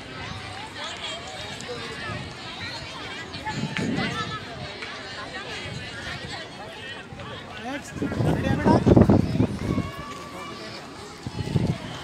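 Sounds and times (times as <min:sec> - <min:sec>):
crowd of students chattering: 0:00.0 - 0:12.0.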